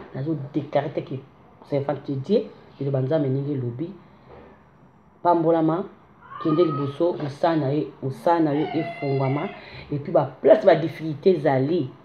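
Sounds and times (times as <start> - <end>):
woman speaking expressively: 5.3 - 12.0.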